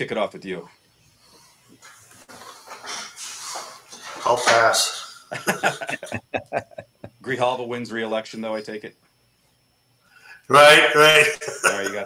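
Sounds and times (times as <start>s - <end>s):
faint breathing: 10.0s - 10.5s.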